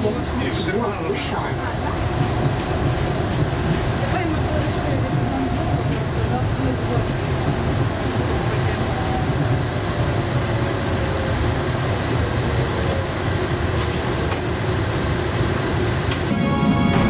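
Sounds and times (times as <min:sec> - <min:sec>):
train rumble and hiss: 0:00.0 - 0:17.0
music: 0:16.2 - 0:17.0.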